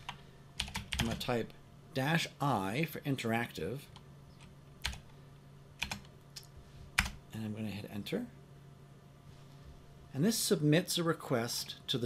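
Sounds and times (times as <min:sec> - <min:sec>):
computer keyboard keys clicking: 0:00.0 - 0:01.2, 0:04.4 - 0:05.0, 0:05.8 - 0:07.2.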